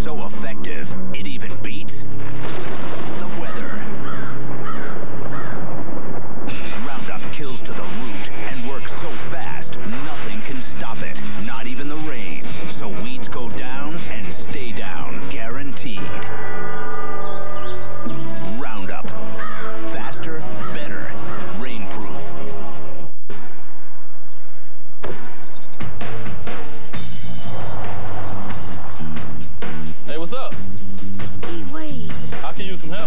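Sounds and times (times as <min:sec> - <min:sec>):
low musical drone: 0:02.1 - 0:23.0, 0:27.0 - 0:29.7
crow cawing: 0:03.4 - 0:05.8, 0:19.3 - 0:19.9, 0:20.6 - 0:21.5
held musical chord: 0:16.2 - 0:21.3.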